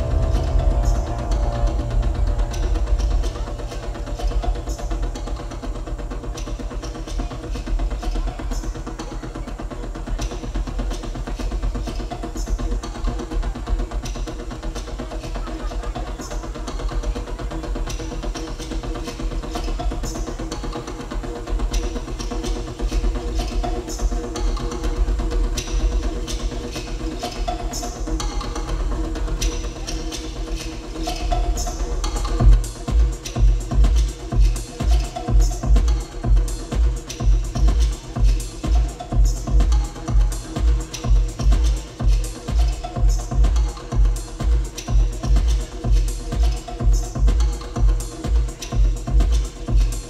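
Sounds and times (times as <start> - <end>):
deep synthesizer bass drone: 0.0 - 8.0.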